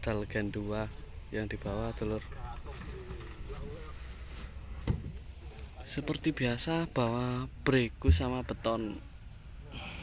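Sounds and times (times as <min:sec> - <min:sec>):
steady low rumble: 0:08.0 - 0:08.6
heavy knock of speaker cabinet: 0:08.1 - 0:08.4.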